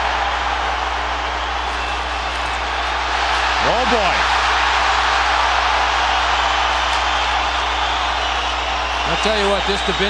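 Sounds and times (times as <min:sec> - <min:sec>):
arena crowd cheering and yelling: 0:00.0 - 0:10.0.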